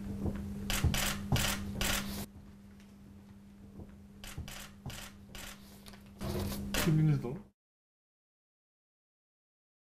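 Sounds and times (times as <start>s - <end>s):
low steady hum: 0.0s - 7.5s.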